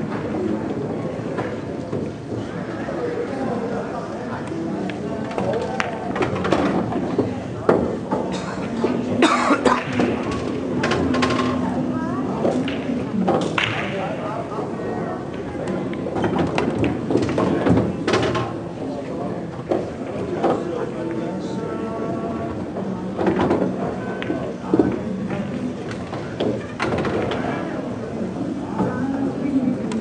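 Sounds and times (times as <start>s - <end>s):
faint chatter: 0.0s - 30.0s
multi-tone hum: 0.0s - 30.0s
person coughing: 9.2s - 9.9s.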